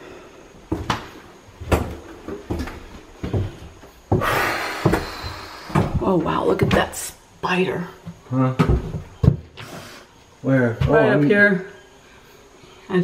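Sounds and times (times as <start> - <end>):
footsteps indoors: 0.0 - 7.2, 8.0 - 11.3.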